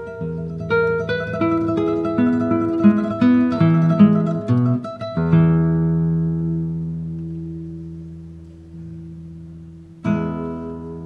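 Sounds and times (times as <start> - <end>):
classical guitar chord ringing: 0.0 - 11.0.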